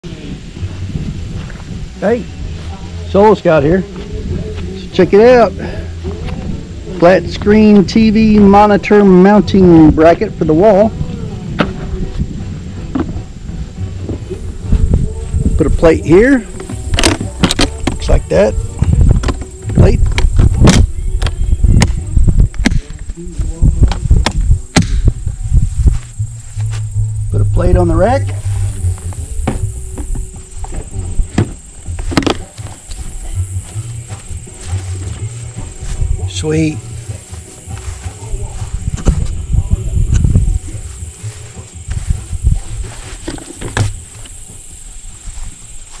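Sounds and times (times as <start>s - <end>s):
wind rumbling on microphone: 0.0s - 46.0s
plastic case clicks and knocks: 16.6s - 18.0s, 32.1s - 32.4s
low rumble: 18.5s - 32.0s.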